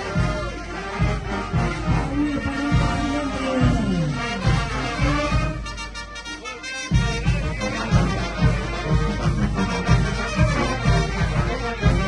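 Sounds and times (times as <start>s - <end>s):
brass band playing dance tune: 0.0s - 12.0s
sousaphone bass beat: 1.2s - 5.6s.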